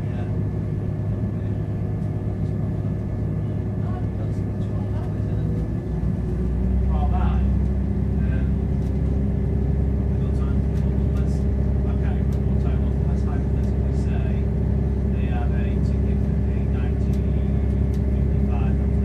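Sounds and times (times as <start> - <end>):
diesel engine drone: 0.0 - 19.0.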